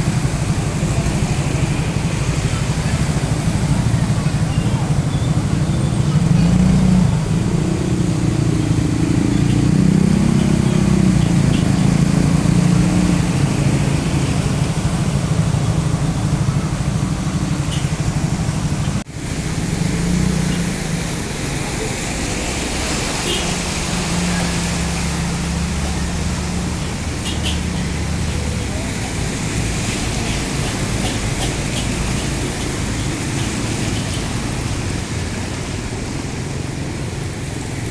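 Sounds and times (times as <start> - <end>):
vehicle engines running: 0.0 - 37.9
water splashing around wheels: 0.0 - 37.9.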